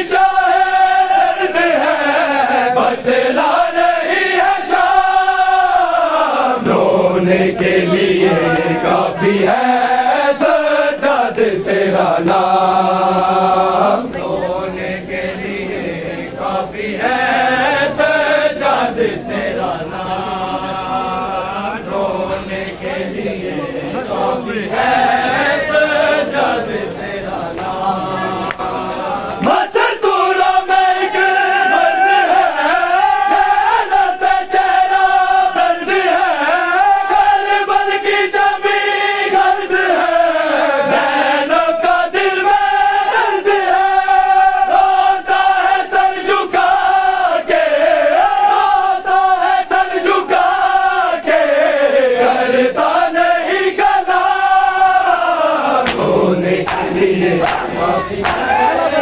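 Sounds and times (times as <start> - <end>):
men chanting in unison: 0.0 - 59.0
chest-beating slaps: 55.8 - 58.6.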